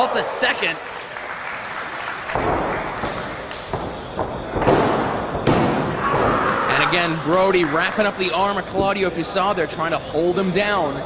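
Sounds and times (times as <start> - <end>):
crowd noise in a hall: 0.0 - 11.0.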